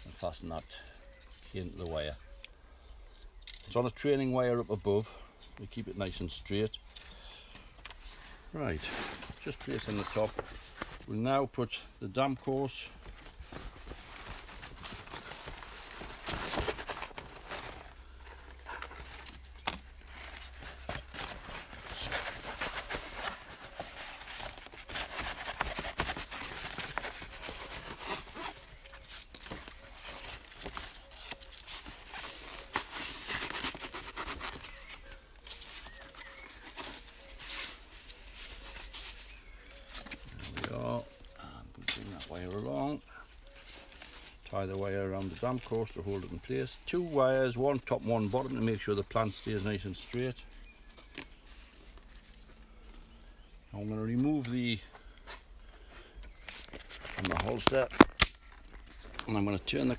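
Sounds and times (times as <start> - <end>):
plastic mesh sheet crinkling: 12.4 - 41.3.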